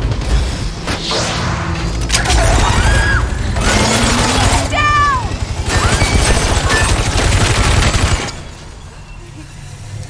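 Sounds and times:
woman shouting: 4.4 - 5.4.

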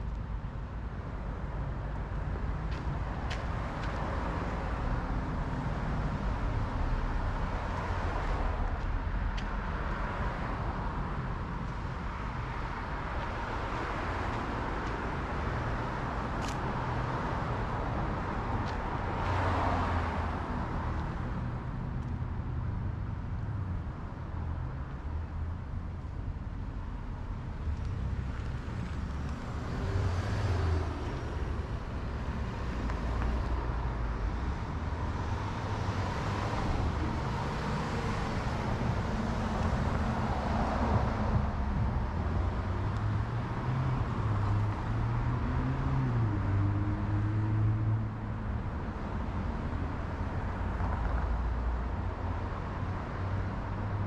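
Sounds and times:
cars passing: 0.0 - 54.0
highway traffic rumble: 0.0 - 54.0.

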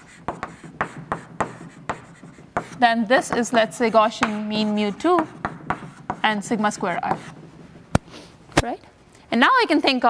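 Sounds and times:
chalk writing on blackboard: 0.0 - 7.6.

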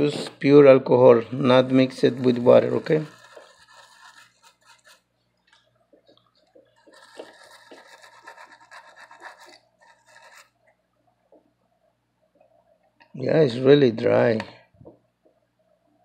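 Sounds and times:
brush scrubbing scratchy strokes: 1.4 - 5.1, 6.6 - 10.5.

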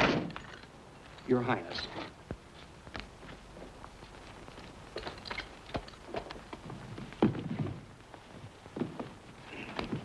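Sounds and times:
light clicks and knocks of stagecoach: 4.0 - 7.9.

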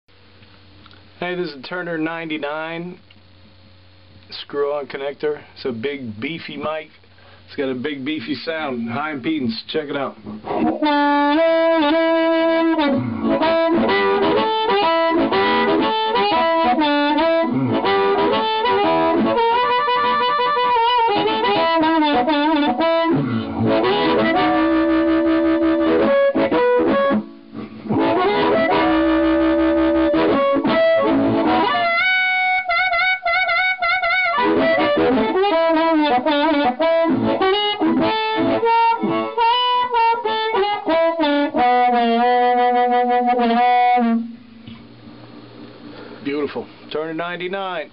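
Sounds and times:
amplified blues harmonica: 10.2 - 44.4.

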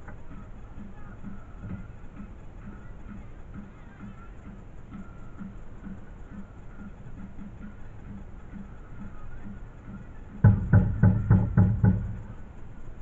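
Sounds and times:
drum beating: 0.0 - 13.0.

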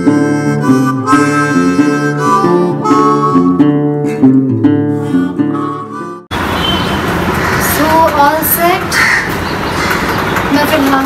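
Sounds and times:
steady background noise: 6.3 - 11.0
crow cawing: 7.2 - 8.1, 8.8 - 10.5.

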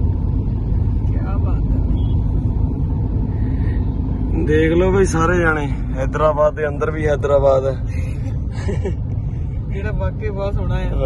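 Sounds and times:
car engine inside cabin: 0.0 - 11.0
road noise: 0.0 - 11.0.

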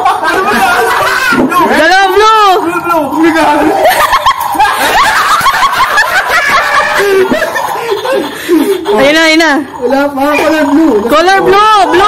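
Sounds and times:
men laughing: 0.0 - 9.4.

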